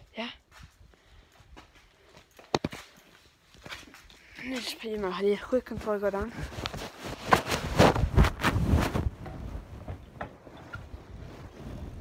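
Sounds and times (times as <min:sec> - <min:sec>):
cloth rubbing on microphone: 0:05.8 - 0:10.0, 0:10.7 - 0:12.0.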